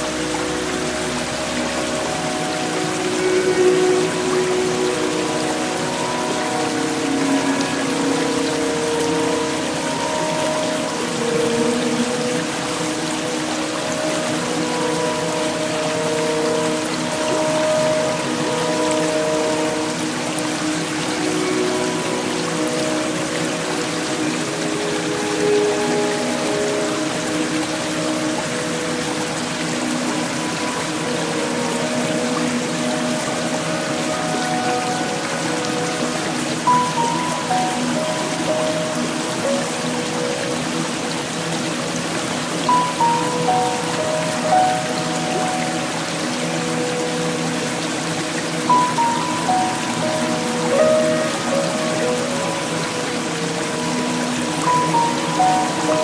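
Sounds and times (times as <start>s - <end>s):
slow background music: 0.0s - 56.0s
water rushing down a cascade: 0.0s - 56.0s.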